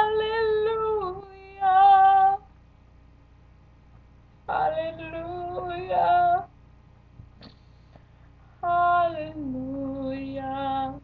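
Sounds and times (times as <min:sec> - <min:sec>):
woman singing unaccompanied: 0:00.0 - 0:02.5, 0:04.4 - 0:06.6, 0:08.6 - 0:11.0.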